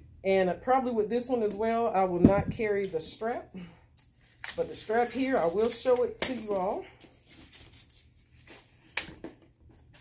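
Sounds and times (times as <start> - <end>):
rustling of plastic wrapping: 4.1 - 10.0.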